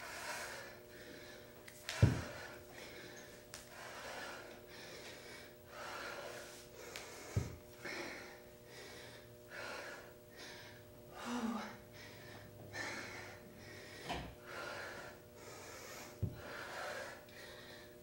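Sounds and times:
woman breathing hard: 0.0s - 18.0s.

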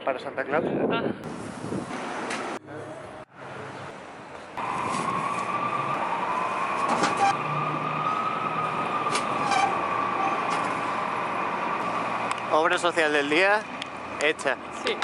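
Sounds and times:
city traffic: 1.2s - 15.0s
distant emergency siren: 4.6s - 12.6s.

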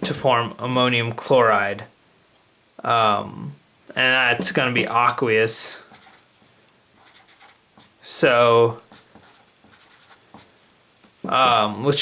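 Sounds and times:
felt-tip marker writing on paper: 5.9s - 6.2s, 7.0s - 8.0s, 8.9s - 10.5s.

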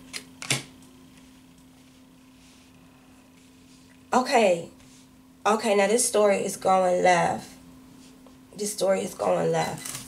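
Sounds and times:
faint steady hum: 0.0s - 10.0s
cards clicking set down: 0.1s - 0.7s.

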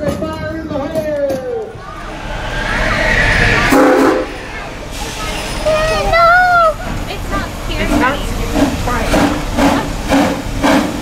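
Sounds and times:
steam train rushing: 1.6s - 11.0s
train whistle blast: 3.3s - 4.4s.

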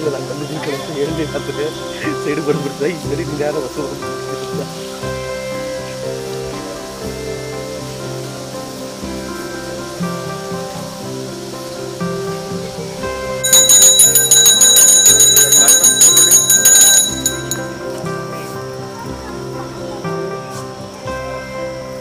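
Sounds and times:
steady music: 0.0s - 22.0s
hand bell ringing rapidly: 13.4s - 17.8s.

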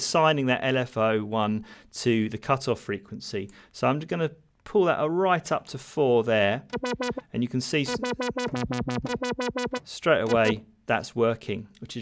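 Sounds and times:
pulsing synthesizer note: 6.7s - 7.2s, 7.9s - 10.6s.

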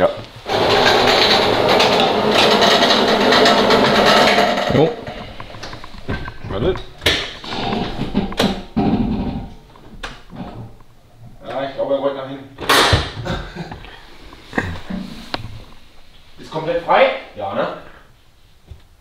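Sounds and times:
machine motor running: 0.4s - 5.2s
sharp knocks: 0.5s - 10.6s.

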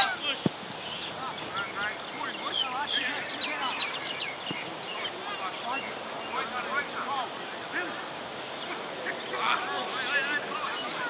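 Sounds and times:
players shouting and calling: 0.0s - 11.0s
steady outdoor hiss: 0.0s - 11.0s.

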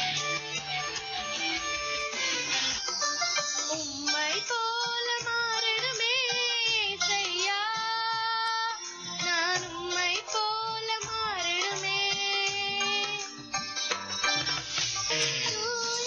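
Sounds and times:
instrumental backing with beat: 0.0s - 16.0s
girl singing with vibrato: 3.7s - 13.3s, 15.4s - 16.0s.

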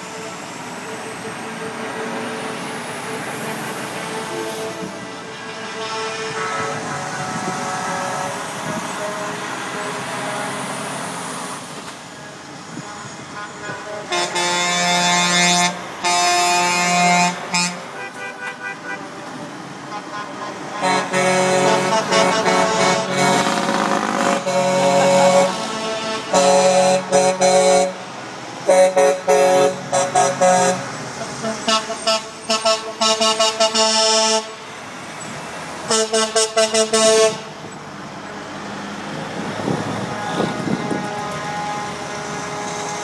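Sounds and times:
trucks passing: 0.0s - 43.0s
truck air horn blasts: 3.1s - 11.0s, 12.1s - 19.2s, 19.8s - 34.6s, 35.8s - 37.6s, 40.0s - 43.0s.

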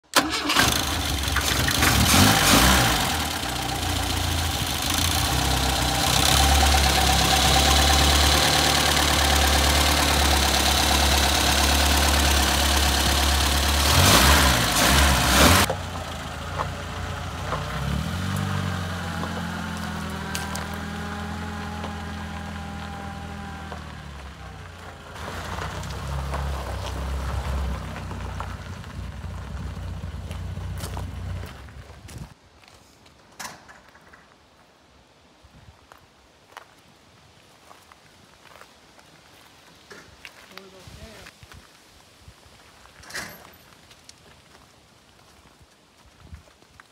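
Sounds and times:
car engine starting and revving: 0.1s - 31.8s
car driving slowly: 0.2s - 32.7s.

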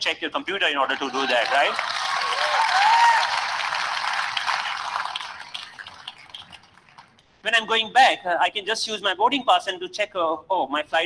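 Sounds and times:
audience applause: 0.8s - 7.2s.

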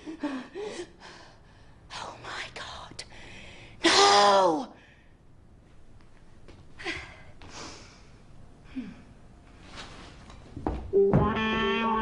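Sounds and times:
woman breathing: 0.0s - 1.9s, 3.1s - 3.8s, 4.7s - 5.4s, 6.8s - 9.3s.

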